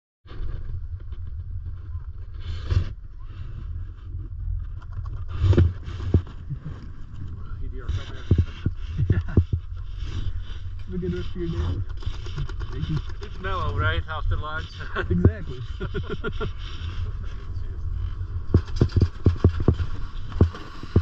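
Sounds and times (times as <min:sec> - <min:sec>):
wind rumble: 0:00.3 - 0:21.0
chairlift motion: 0:04.9 - 0:21.0
ski poles knocking: 0:11.8 - 0:13.7, 0:18.4 - 0:21.0.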